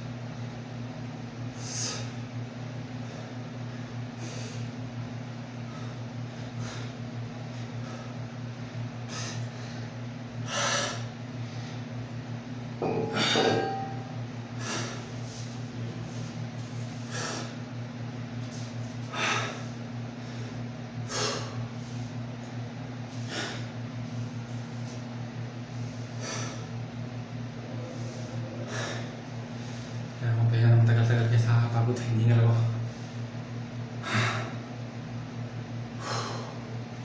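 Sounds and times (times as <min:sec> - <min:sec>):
steady low hum: 0:00.0 - 0:37.0
man breathing hard: 0:01.5 - 0:02.3, 0:03.0 - 0:12.0, 0:14.5 - 0:17.7, 0:18.4 - 0:25.0, 0:25.6 - 0:26.9, 0:27.7 - 0:30.1, 0:32.8 - 0:34.8, 0:35.9 - 0:36.9.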